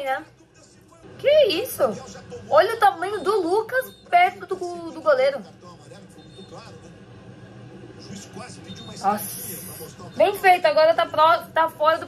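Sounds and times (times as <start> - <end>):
low steady background noise: 0.0 - 12.0
football commentator's voice: 8.0 - 11.4.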